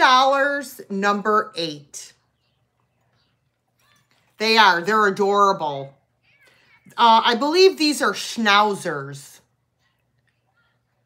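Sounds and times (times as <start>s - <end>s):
woman speaking: 0.0s - 2.4s, 3.8s - 11.0s.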